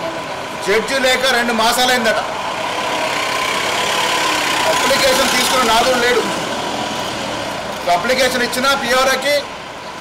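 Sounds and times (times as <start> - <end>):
vehicle engine idling: 0.0 - 8.0
street traffic: 0.0 - 10.0
man talking: 0.6 - 2.3, 4.6 - 6.4, 7.8 - 9.5.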